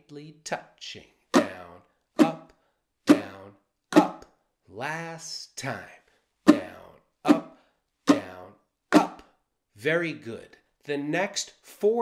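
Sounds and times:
muted ukulele strums: 1.4s - 2.5s, 3.1s - 3.4s, 4.0s - 4.2s, 6.5s - 7.5s, 8.1s - 9.2s.

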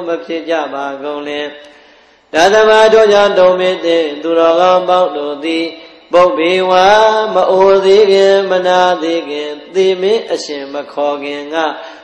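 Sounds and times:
monk chanting: 0.0s - 12.0s.

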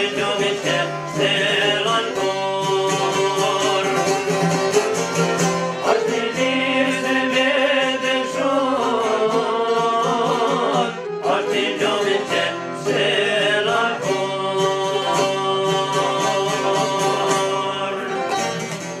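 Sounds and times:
long-necked lute strummed: 0.0s - 19.0s
violin bowed: 0.0s - 19.0s.

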